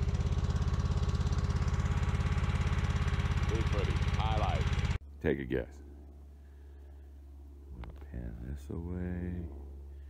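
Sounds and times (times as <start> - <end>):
small engine running steadily: 0.0 - 10.0.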